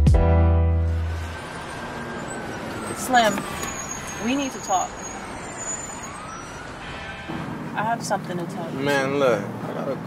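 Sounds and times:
street traffic rumble: 0:00.6 - 0:10.0.

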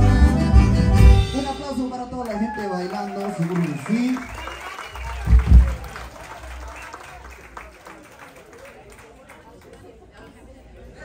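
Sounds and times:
audience applauding: 0:02.2 - 0:09.9.

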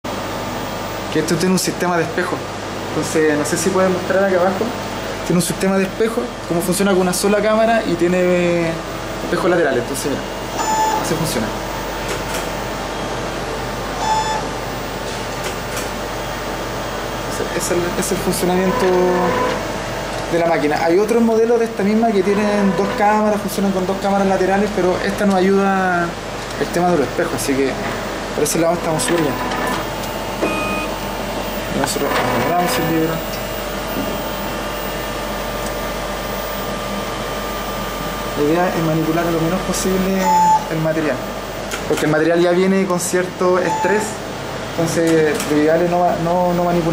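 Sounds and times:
machine fans whirring: 0:00.1 - 0:46.9
short electronic beep: 0:30.4 - 0:30.9.

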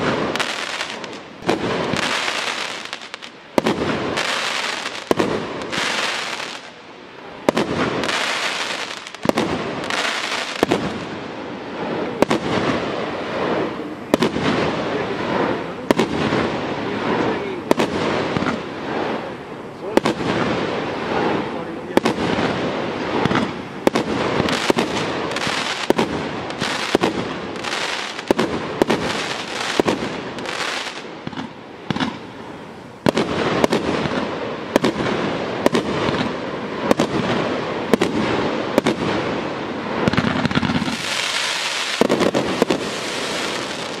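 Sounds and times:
fireworks bangs: 0:00.0 - 0:44.0
fireworks crackle and hiss: 0:00.0 - 0:44.0.

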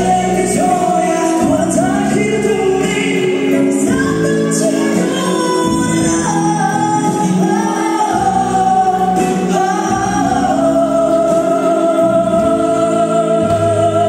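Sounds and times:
live band playing: 0:00.0 - 0:14.0
man and woman singing duet: 0:00.0 - 0:14.0.

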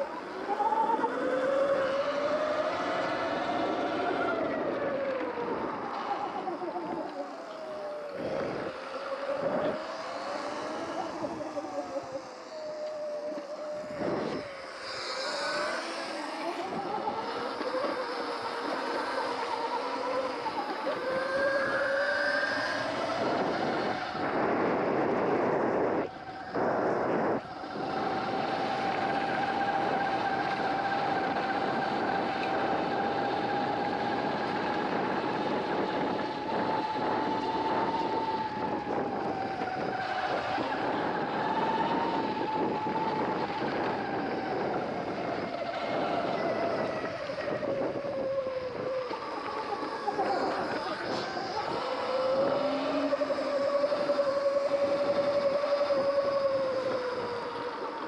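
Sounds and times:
electric bike motor whining: 0:00.0 - 0:58.0
wind rush: 0:00.0 - 0:58.0.

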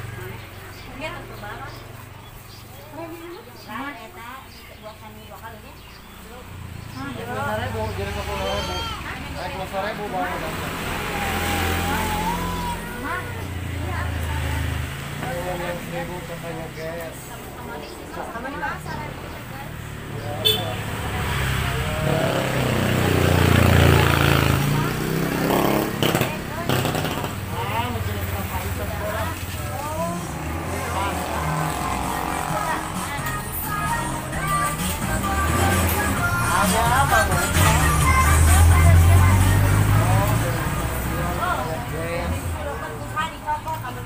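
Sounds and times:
indistinct talking: 0:00.0 - 0:44.0
vehicle engine running: 0:00.0 - 0:44.0
voices: 0:00.0 - 0:44.0.

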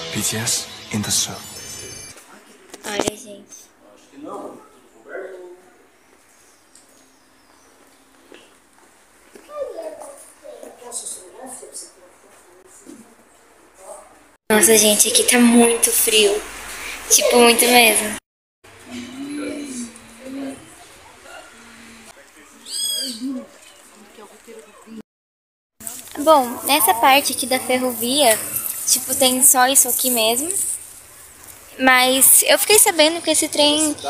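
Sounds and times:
indistinct voices speaking: 0:18.8 - 0:25.0, 0:25.8 - 0:30.8.

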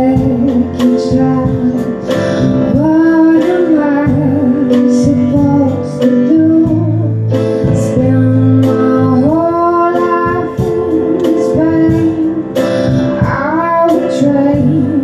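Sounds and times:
piano with band: 0:00.0 - 0:15.0.

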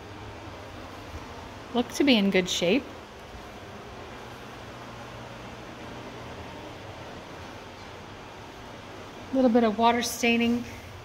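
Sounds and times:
oven hum and hiss: 0:00.0 - 0:11.0.

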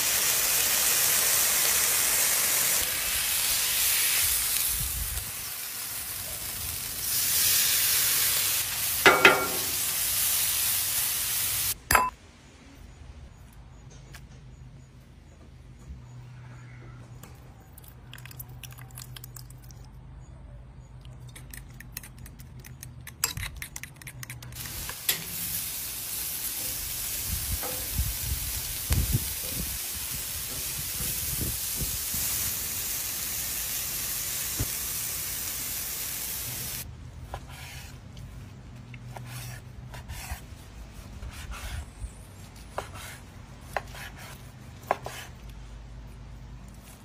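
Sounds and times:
shrimp sizzling on a griddle: 0:00.0 - 0:11.8, 0:24.6 - 0:36.9.

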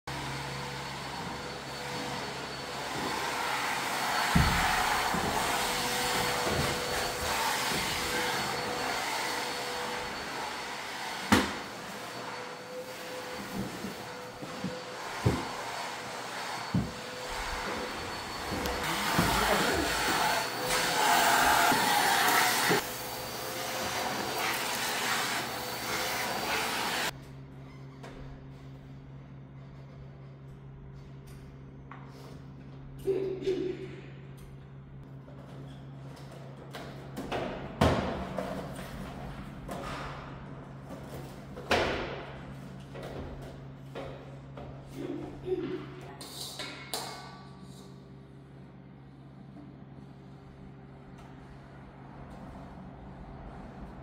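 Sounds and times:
vacuum cleaner running: 0:00.1 - 0:27.2.

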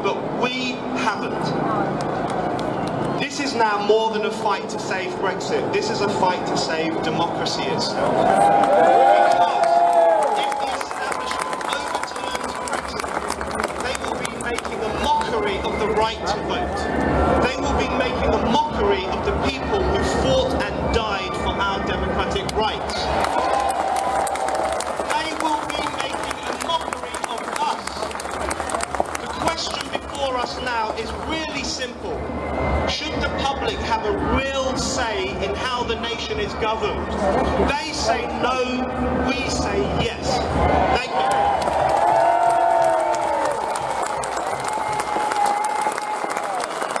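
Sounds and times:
crowd clapping and cheering: 0:01.9 - 0:03.2, 0:07.9 - 0:16.2, 0:22.3 - 0:32.1, 0:40.4 - 0:47.0
shouts in crowd: 0:08.0 - 0:13.0, 0:40.6 - 0:47.0.

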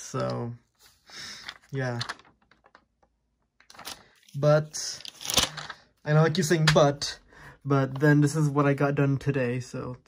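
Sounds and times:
paper rustling: 0:00.2 - 0:02.8, 0:03.6 - 0:05.9.

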